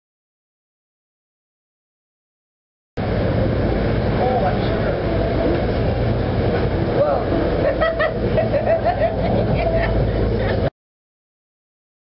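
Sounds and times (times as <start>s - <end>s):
steady low rumble: 3.0s - 10.7s.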